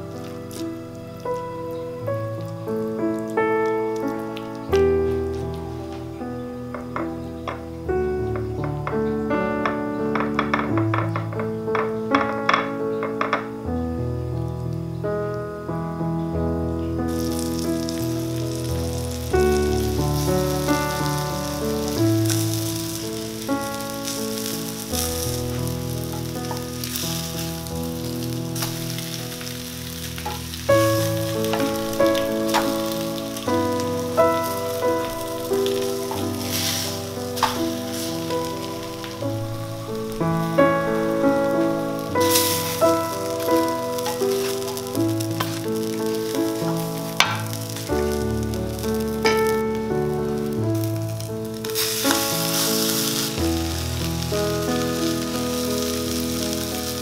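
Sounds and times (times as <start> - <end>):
background music with melody: 0.0 - 57.0
patties sizzling in oil: 0.0 - 57.0.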